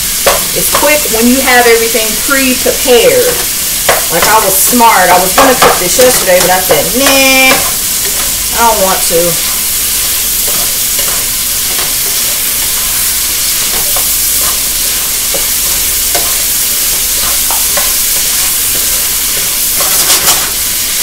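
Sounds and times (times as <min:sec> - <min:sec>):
chicken sizzling in a hot pan: 0:00.0 - 0:21.0
wooden spatula scraping pan: 0:03.2 - 0:20.6.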